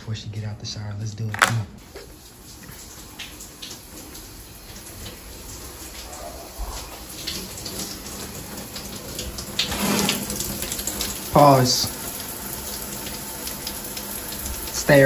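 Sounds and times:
shower spraying water: 0:01.8 - 0:15.0
shower curtain pulled open: 0:09.6 - 0:10.4.

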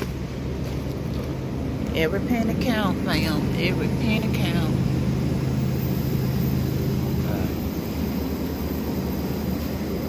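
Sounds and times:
supermarket background hum: 0:00.0 - 0:10.0.

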